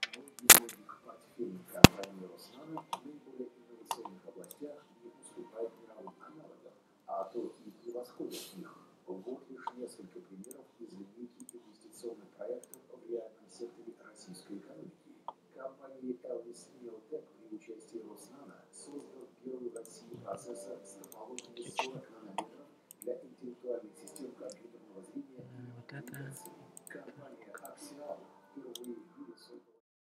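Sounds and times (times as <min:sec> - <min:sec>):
short sharp clicks: 0:00.0 - 0:00.8, 0:01.8 - 0:02.1
faint indistinct talking: 0:00.0 - 0:29.8
person speaking: 0:00.0 - 0:29.8.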